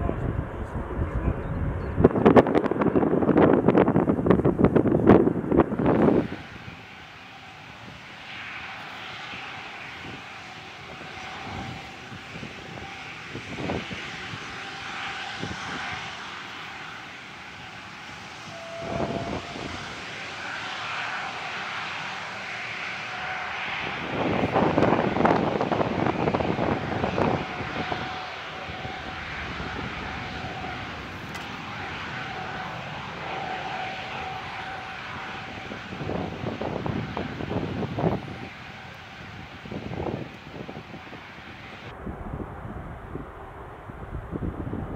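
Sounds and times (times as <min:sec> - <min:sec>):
jet engines whining and rushing: 0:00.0 - 0:44.9.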